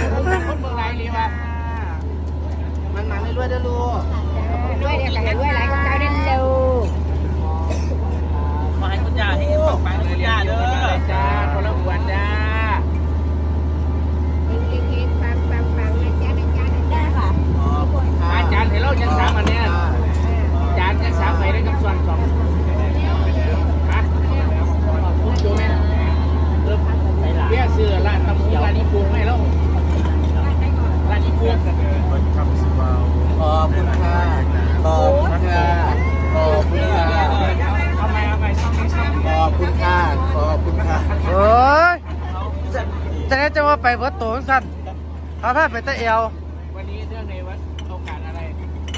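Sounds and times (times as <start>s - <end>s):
diesel generator humming: 0.0s - 48.9s
people chattering: 0.0s - 48.9s.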